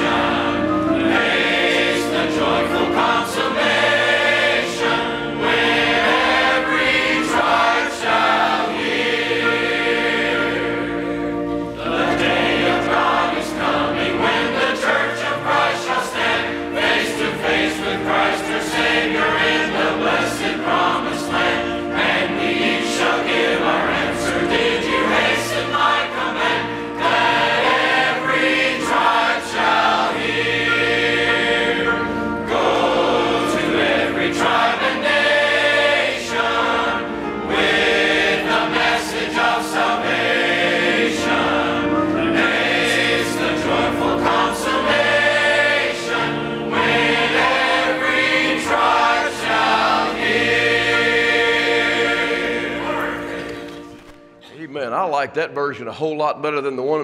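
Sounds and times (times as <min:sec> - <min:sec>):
congregation and choir singing: 0:00.0 - 0:54.6
piano accompaniment: 0:00.0 - 0:56.2.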